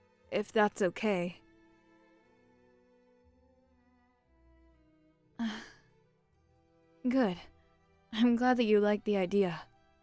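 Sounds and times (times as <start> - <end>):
sustained string background music: 0.0 - 10.0
woman's breathy sigh: 5.4 - 5.9.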